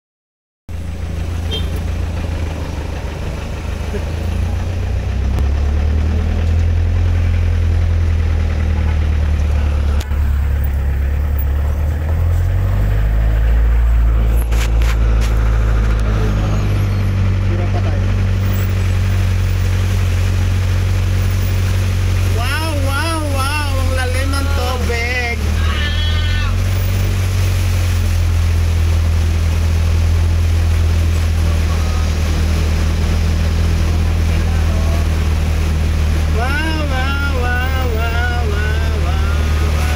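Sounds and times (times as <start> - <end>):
road noise on wet road: 0.7 - 39.9
vehicle engine drone: 0.7 - 39.9
person's sing-song voice: 22.3 - 25.9, 36.3 - 39.9.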